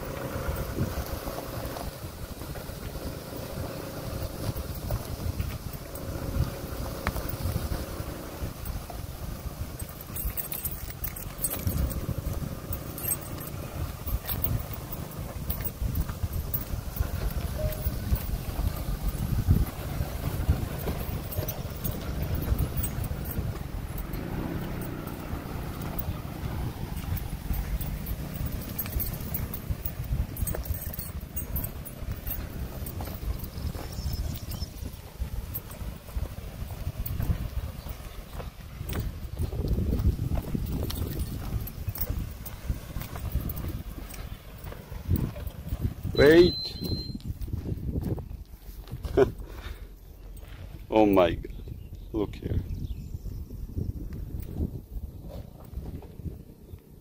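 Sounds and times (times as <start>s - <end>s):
car engine running low: 0.0s - 57.0s
heavy wind rumble: 0.0s - 57.0s.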